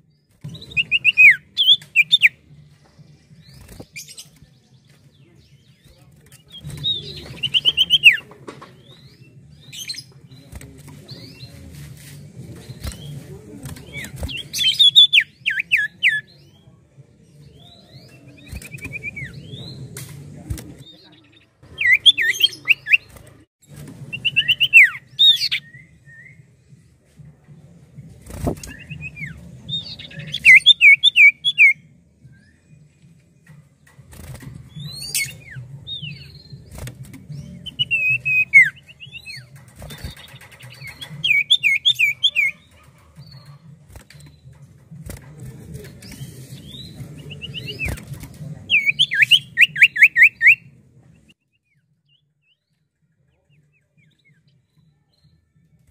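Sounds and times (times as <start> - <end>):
bird whistling rapid notes: 40.8 - 42.6.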